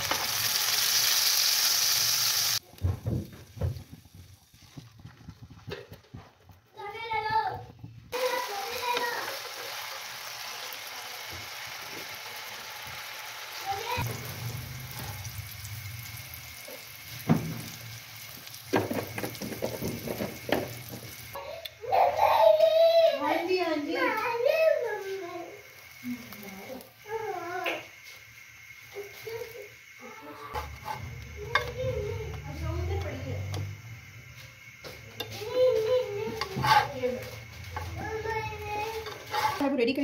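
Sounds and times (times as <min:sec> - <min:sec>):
kebabs sizzling in oil: 0:00.0 - 0:06.8, 0:07.8 - 0:40.0.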